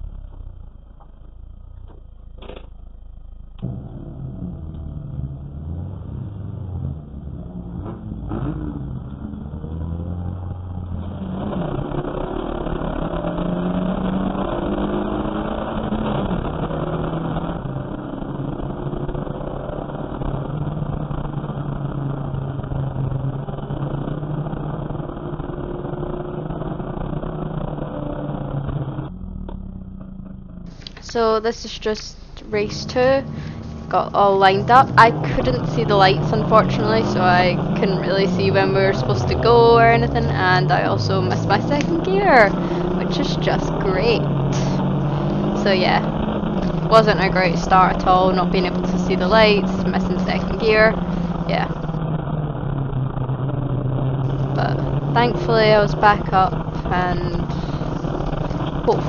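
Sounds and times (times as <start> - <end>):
race car engine from inside cabin: 0.0 - 59.0.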